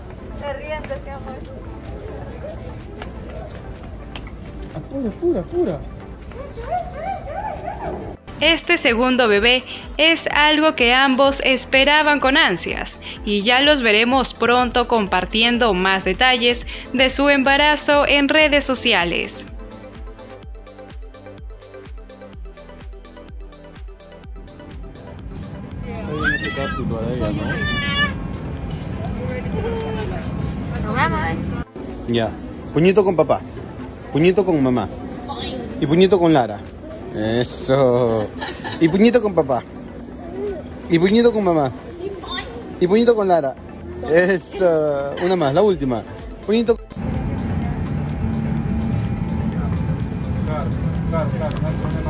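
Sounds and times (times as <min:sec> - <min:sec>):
music: 0:00.0 - 0:52.0
small child crying: 0:26.1 - 0:28.2, 0:40.1 - 0:40.9, 0:42.0 - 0:42.7
airliner cabin drone: 0:26.8 - 0:31.7, 0:47.0 - 0:52.0.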